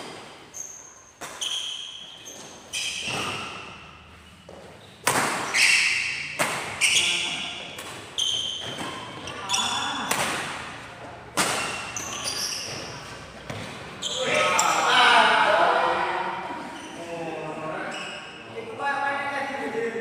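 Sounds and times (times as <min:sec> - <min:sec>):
racket striking shuttlecock: 0:05.0 - 0:06.8, 0:10.0 - 0:10.6.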